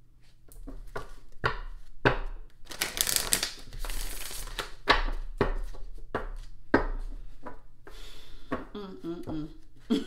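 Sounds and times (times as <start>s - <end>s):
cards riffling: 2.7s - 4.7s
cards slapping together: 2.7s - 5.2s.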